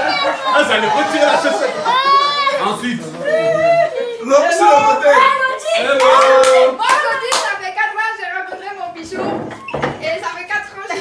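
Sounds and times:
excited voices: 0:00.0 - 0:08.0
sharp hand claps: 0:06.0 - 0:07.6.

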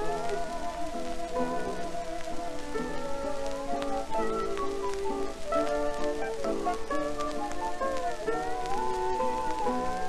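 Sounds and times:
hawaiian ensemble waltz: 0:00.0 - 0:10.0
record crackle and hiss: 0:00.0 - 0:10.0
sliding steel guitar notes: 0:00.0 - 0:10.0.

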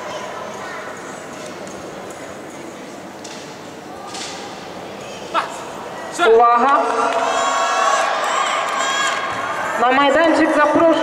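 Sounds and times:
crowd talking and calling out: 0:03.8 - 0:11.0.

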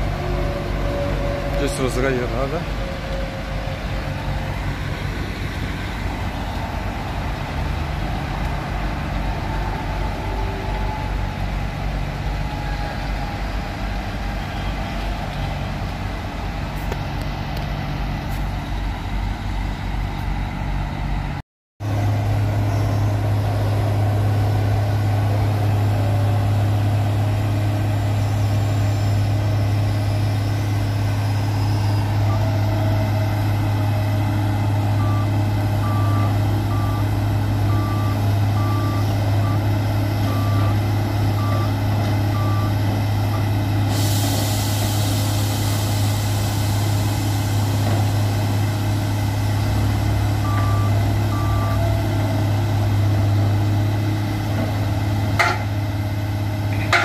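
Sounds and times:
diesel machinery humming: 0:00.0 - 0:57.0.

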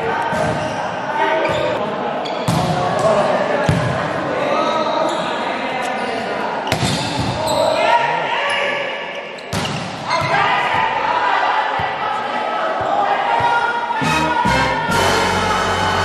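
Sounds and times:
players and spectators chattering: 0:00.0 - 0:16.0.

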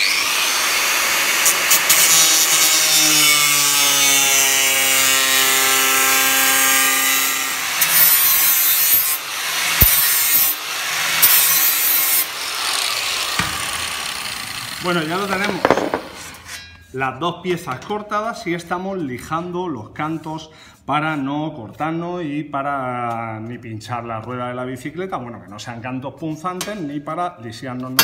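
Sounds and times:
angle grinder cutting metal sheet: 0:00.0 - 0:16.7.

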